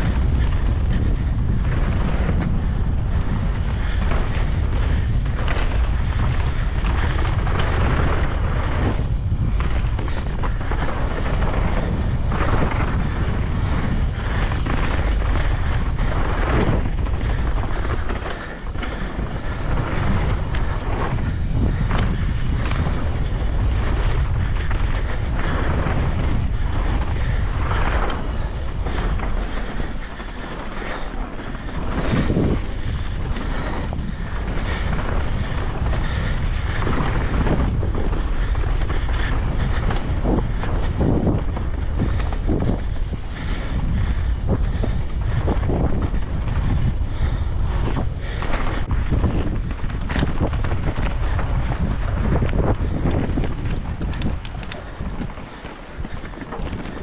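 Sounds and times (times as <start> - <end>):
bike knocks and rattles: 0.0 - 57.0
bike tyres rumbling over dirt: 0.0 - 57.0
wind buffeting microphone: 0.0 - 57.0.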